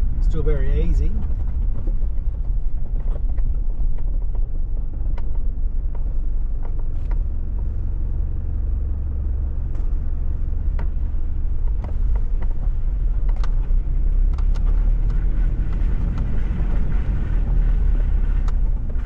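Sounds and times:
engine and tyres rumbling: 0.0s - 19.0s.

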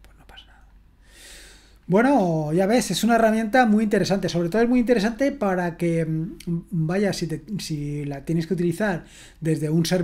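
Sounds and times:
man breathing in: 1.0s - 1.8s, 9.1s - 9.4s
man talking: 1.9s - 10.0s.

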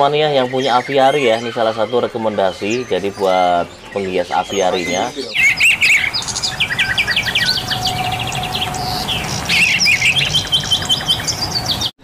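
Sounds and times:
songbirds chirping and trilling: 0.0s - 12.0s.

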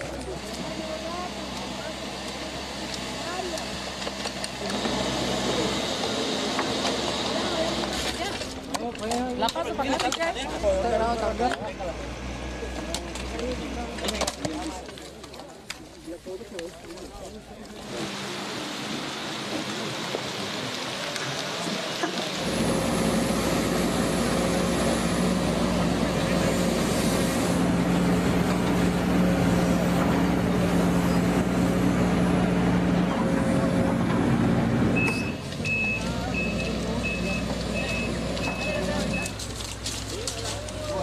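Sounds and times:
excavator diesel engine: 0.0s - 15.8s, 17.3s - 41.0s
people working: 0.0s - 41.0s
backup alarm beeping: 35.0s - 39.4s.

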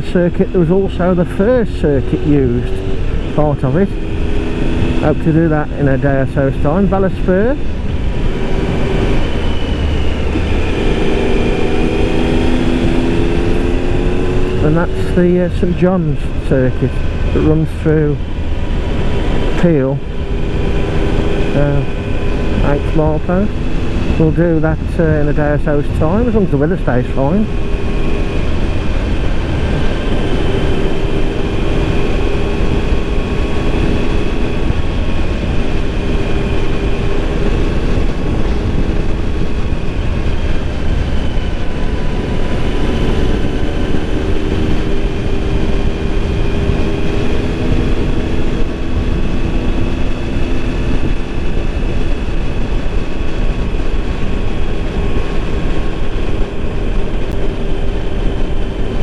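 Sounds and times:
motorcycle engine drone: 0.0s - 59.0s
wind rush on microphone: 0.0s - 59.0s.

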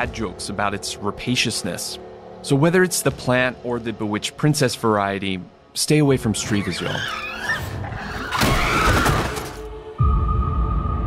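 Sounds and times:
music: 0.0s - 11.0s
monster screech: 6.4s - 9.6s.

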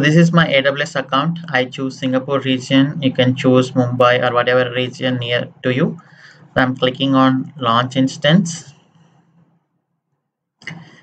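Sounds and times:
person speaking: 0.0s - 8.8s.

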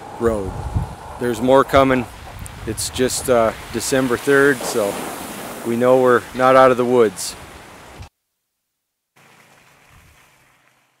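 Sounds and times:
faint rushing noise: 0.0s - 8.1s.

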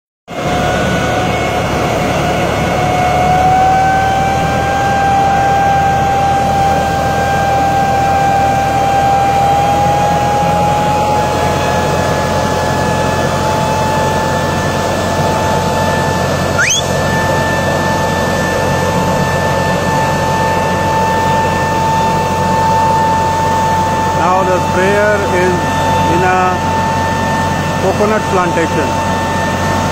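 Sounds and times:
tractor engine drone: 0.3s - 29.9s
sprayer high whine: 16.2s - 17.9s
high rising chirp: 16.6s - 17.0s.

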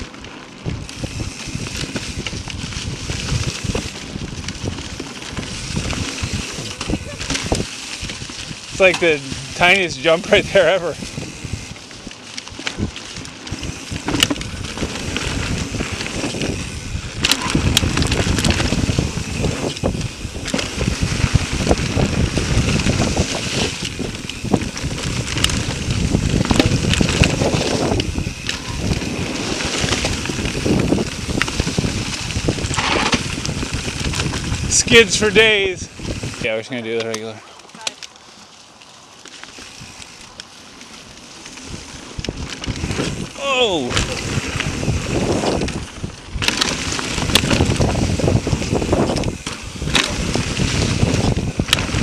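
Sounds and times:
bike clicking and rattling: 0.0s - 52.0s
bike tyres rolling over dirt and leaves: 0.0s - 52.0s.

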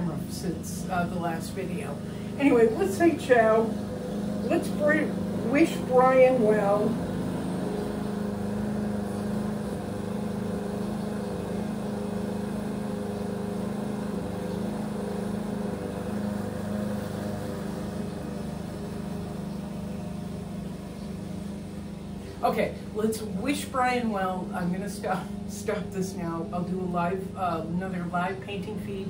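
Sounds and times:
lawn mower engine running: 0.0s - 29.0s.

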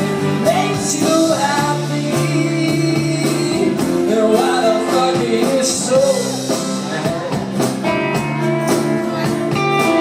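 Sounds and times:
person singing: 0.0s - 7.4s
live band music: 0.0s - 10.0s.

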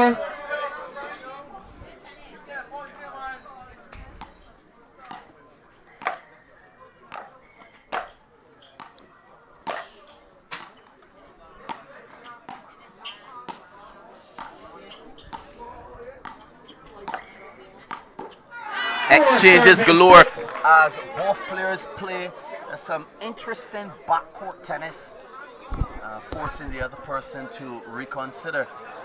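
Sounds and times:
faint crowd chatter: 0.0s - 29.0s
ball bouncing on court: 4.2s - 4.4s, 7.1s - 7.3s, 7.9s - 8.2s, 11.6s - 11.8s, 12.5s - 12.7s, 13.5s - 13.7s, 16.2s - 17.3s, 17.9s - 18.4s.

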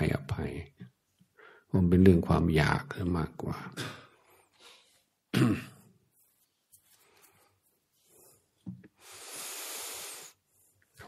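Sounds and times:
man clearing throat: 5.3s - 5.9s.

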